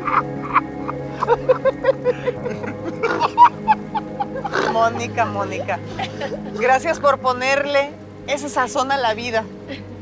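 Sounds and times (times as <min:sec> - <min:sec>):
people laughing: 0:00.0 - 0:06.7
background music: 0:00.0 - 0:10.0.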